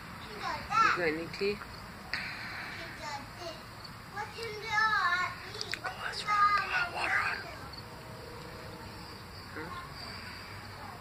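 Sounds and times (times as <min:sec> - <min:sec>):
high-pitched insect chirring: 0:05.8 - 0:10.2.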